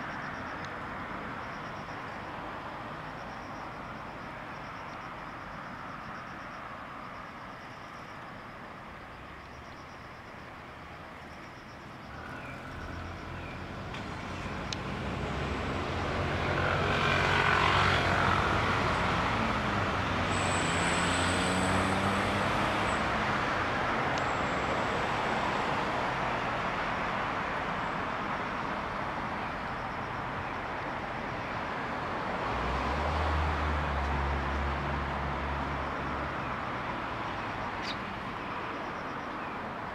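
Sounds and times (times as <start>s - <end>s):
passing engine drone: 12.1s - 25.7s.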